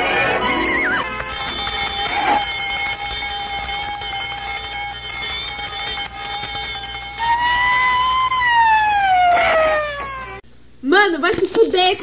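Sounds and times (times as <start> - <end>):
cartoon alarm steady tone: 0.0 - 10.4
police siren: 0.0 - 10.4.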